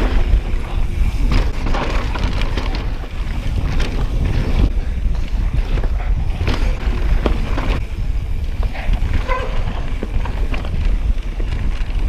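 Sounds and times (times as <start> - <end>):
bike rattling over bumps: 0.0 - 12.0
bike tyres rumbling on dirt: 0.0 - 12.0
wind buffeting microphone: 0.0 - 12.0.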